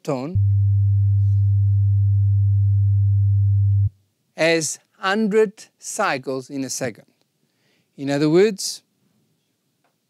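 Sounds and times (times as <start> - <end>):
low sine test tone: 0.4 - 3.9.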